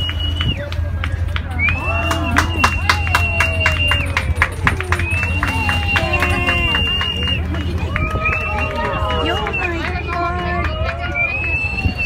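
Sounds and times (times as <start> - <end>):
steady low rumble: 0.0 - 12.0
people calling out: 1.8 - 11.6.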